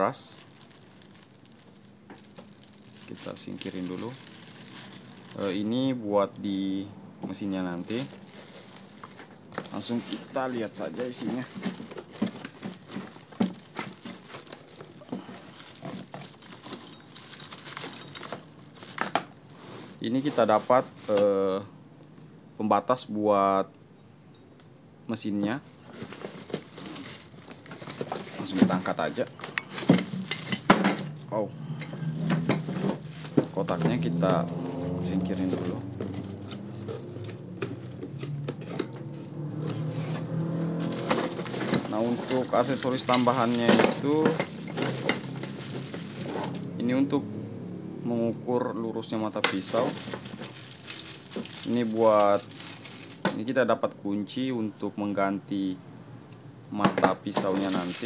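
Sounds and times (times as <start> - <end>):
plastic packaging crinkling: 0.0 - 6.6, 7.3 - 21.2, 25.8 - 31.2, 32.1 - 38.8, 39.8 - 46.7, 49.0 - 53.4, 57.4 - 58.0
cardboard box being moved: 32.1 - 38.1, 39.6 - 46.6.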